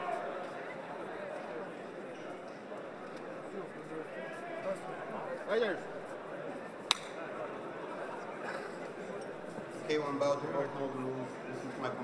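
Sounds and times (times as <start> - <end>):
murmur of many voices: 0.0 - 12.0
sharp click: 6.9 - 7.1.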